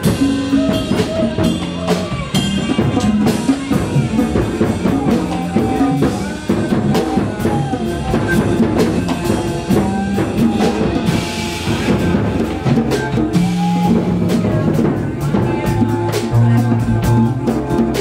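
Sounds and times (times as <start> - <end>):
drum kit: 0.0 - 18.0
low bass line: 0.0 - 18.0.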